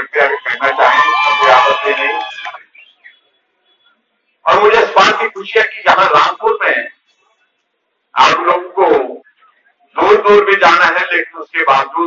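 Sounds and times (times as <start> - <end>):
man speaking: 0.0 - 2.3, 4.5 - 7.0, 8.2 - 9.3, 10.0 - 12.0.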